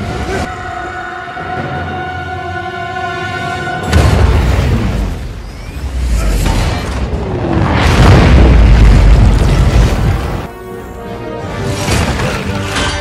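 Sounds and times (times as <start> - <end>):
orchestral score: 0.0 - 5.2, 9.5 - 13.0
explosions: 3.9 - 10.5.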